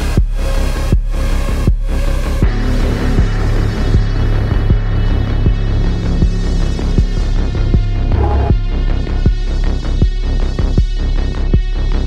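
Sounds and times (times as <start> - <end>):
electronic music with droning bass: 0.0 - 12.0.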